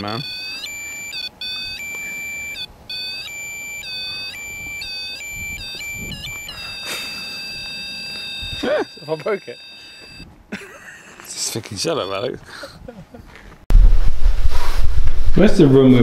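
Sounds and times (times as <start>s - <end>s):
high-pitched electronic alarm tone: 0.0s - 10.3s.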